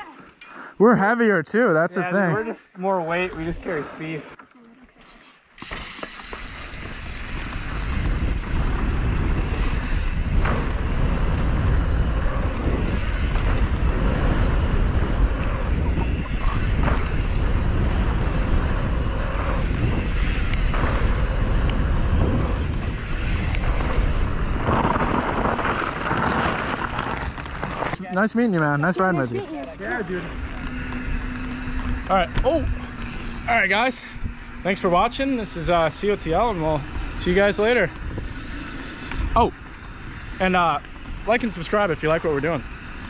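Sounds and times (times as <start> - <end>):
bike tyres rolling on dirt: 2.8 - 4.4, 5.3 - 43.0
bike knocks and rattles: 5.6 - 28.0
wind rushing over camera: 6.4 - 28.0.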